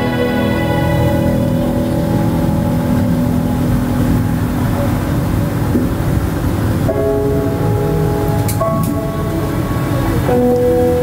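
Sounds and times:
held music notes: 0:00.0 - 0:11.0
steady low rumble: 0:00.0 - 0:11.0.

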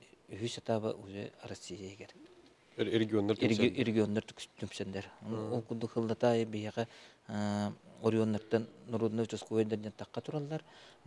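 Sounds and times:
man speaking: 0:00.3 - 0:02.2, 0:02.8 - 0:10.6.

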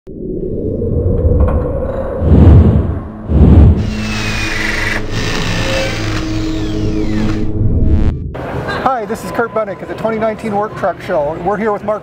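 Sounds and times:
music: 0:03.8 - 0:08.4.

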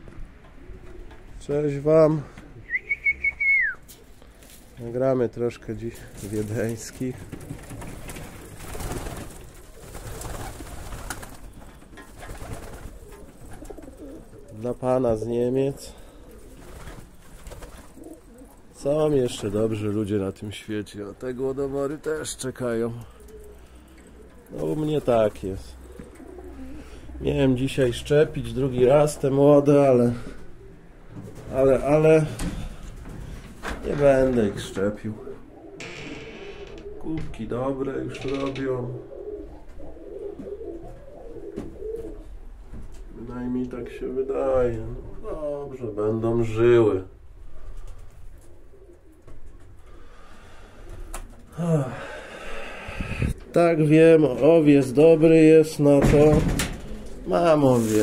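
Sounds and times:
pigeons cooing: 0:00.1 - 0:01.4, 0:07.2 - 0:19.8, 0:21.8 - 0:33.4, 0:34.3 - 0:35.8, 0:36.6 - 0:37.3, 0:38.0 - 0:43.3, 0:47.4 - 0:54.0, 0:56.5 - 0:57.9
soft rustle: 0:57.0 - 0:58.0.

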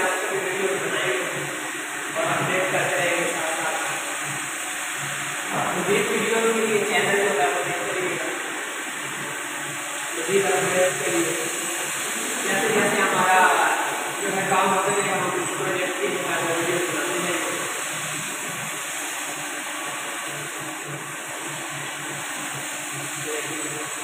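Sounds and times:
steady high hiss: 0:00.0 - 0:24.0
man speaking: 0:05.5 - 0:08.4, 0:10.2 - 0:17.7.

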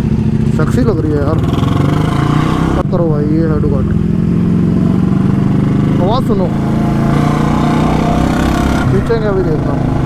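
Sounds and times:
motorcycle engines running: 0:00.0 - 0:10.0.

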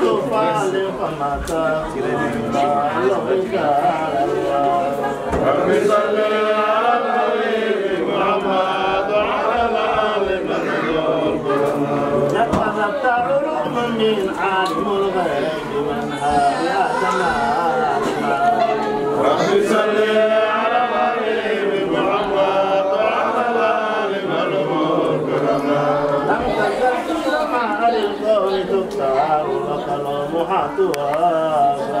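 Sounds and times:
man chanting religious recitation: 0:00.0 - 0:32.0.

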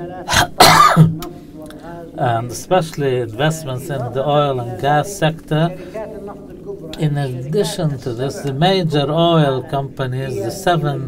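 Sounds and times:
man coughing: 0:00.3 - 0:01.2.

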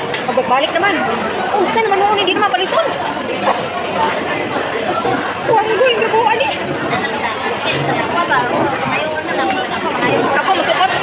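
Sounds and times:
hum of diners' chatter: 0:00.0 - 0:11.0.

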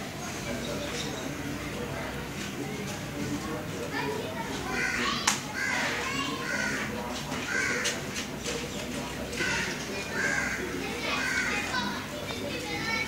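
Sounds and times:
distant voices: 0:00.0 - 0:13.0
crows cawing: 0:04.8 - 0:08.0, 0:09.4 - 0:11.7.

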